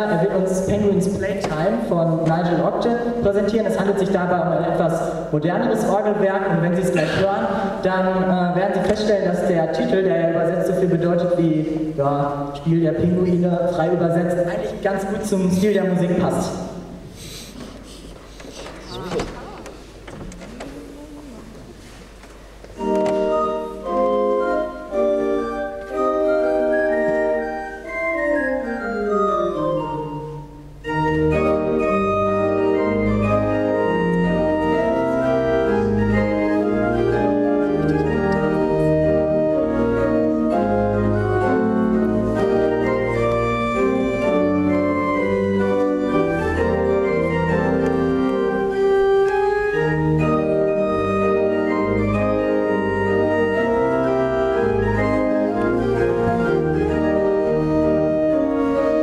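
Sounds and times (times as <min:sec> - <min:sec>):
organ playing: 0:00.0 - 0:17.1, 0:22.5 - 0:59.0.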